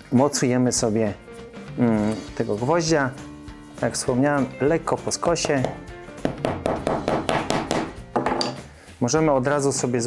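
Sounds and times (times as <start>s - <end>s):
hammer tapping tack into plywood: 5.4s - 8.6s.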